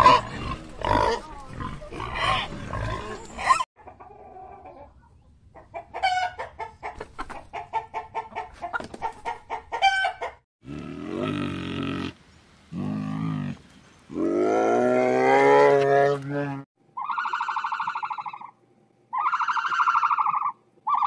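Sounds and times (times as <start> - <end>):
pigs grunting: 0.0 - 3.6, 10.6 - 16.7
chicken clucking: 3.2 - 10.4.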